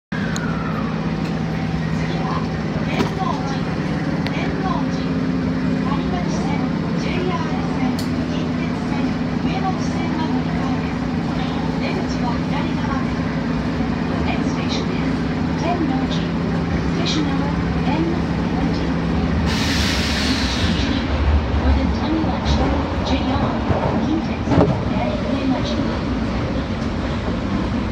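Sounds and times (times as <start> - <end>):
subway train running rumble: 0.1 - 27.9.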